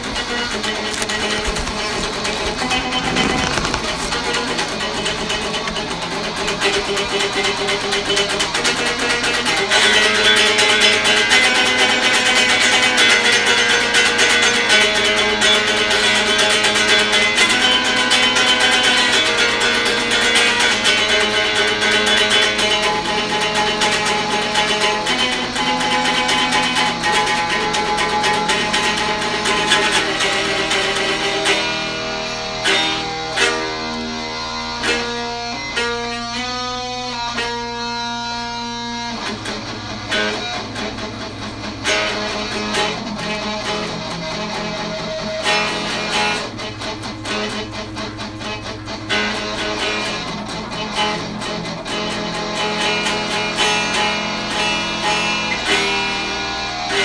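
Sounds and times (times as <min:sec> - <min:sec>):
guitar playing: 0:00.0 - 0:57.0.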